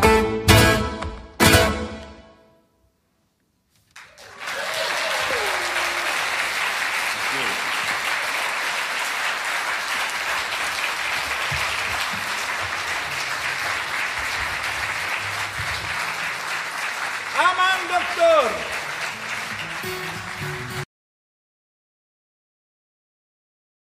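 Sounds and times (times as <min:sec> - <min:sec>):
audience applause: 0:04.0 - 0:20.9.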